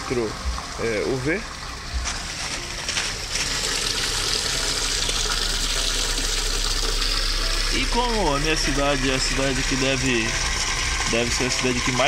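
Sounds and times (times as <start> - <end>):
running water rushing: 0.0 - 12.0.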